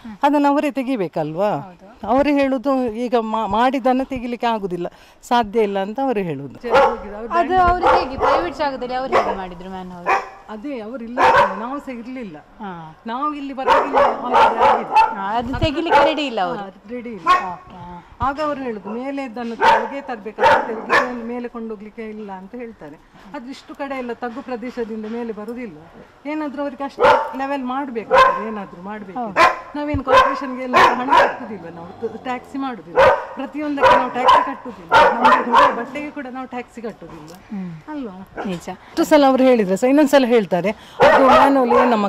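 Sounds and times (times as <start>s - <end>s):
woman talking: 0.1s - 42.0s
dog barking: 6.6s - 10.5s, 11.1s - 11.9s, 13.6s - 16.4s, 17.2s - 17.6s, 18.8s - 21.4s, 27.0s - 28.7s, 29.3s - 31.6s, 32.9s - 36.2s, 41.0s - 42.0s.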